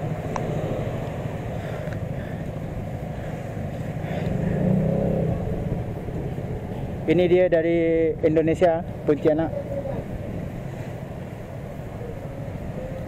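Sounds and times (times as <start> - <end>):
motorcycle engine rumbling: 0.0 - 13.0.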